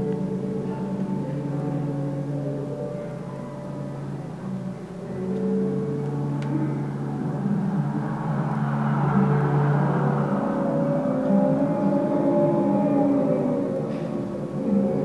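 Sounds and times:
ambient drone music: 0.0s - 15.0s
hissing swell: 5.5s - 14.7s.

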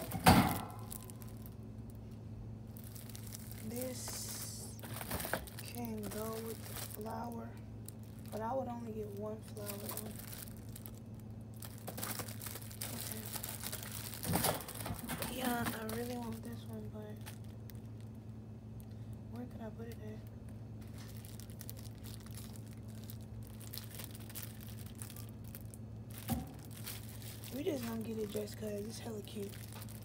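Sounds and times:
plastic shrink-wrap crinkling: 0.0s - 18.9s, 20.8s - 30.0s
low electrical hum: 0.0s - 30.0s.

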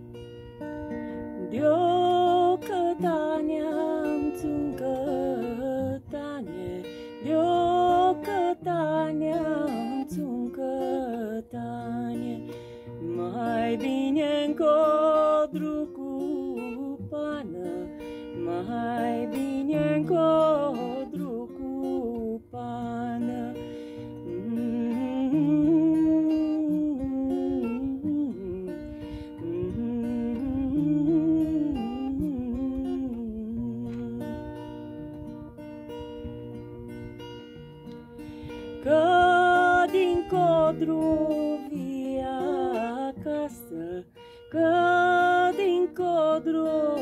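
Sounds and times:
acoustic guitar chords: 0.0s - 47.0s
woman singing a folk song: 0.0s - 47.0s.

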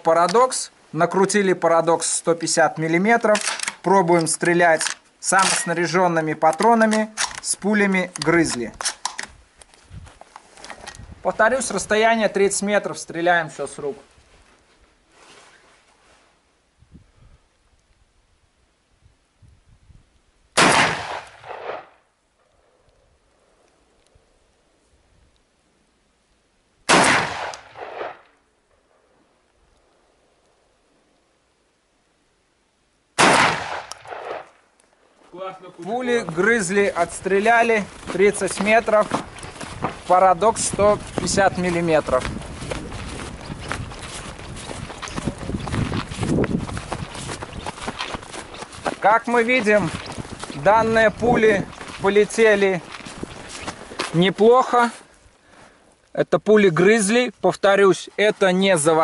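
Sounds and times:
footsteps crunching in snow: 9.6s - 12.6s, 13.9s - 16.4s, 35.2s - 55.8s
shotgun shots: 20.6s - 22.0s, 26.9s - 28.3s, 33.2s - 34.6s.

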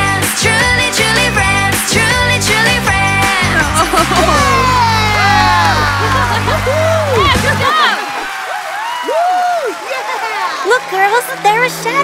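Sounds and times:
voices calling ooh in amazement: 3.4s - 7.4s.

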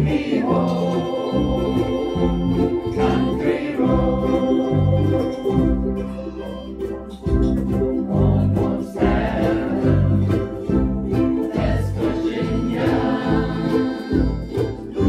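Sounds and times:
harmonica sustained notes: 0.0s - 7.4s, 12.2s - 15.0s
ukulele group strumming chords: 0.0s - 15.0s.

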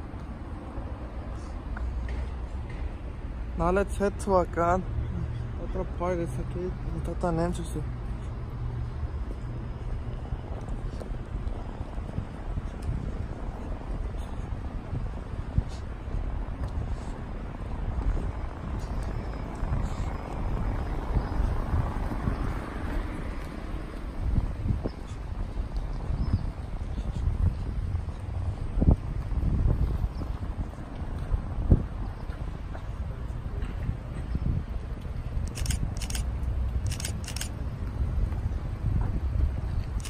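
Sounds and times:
wind rumbling on microphone: 8.0s - 40.0s.

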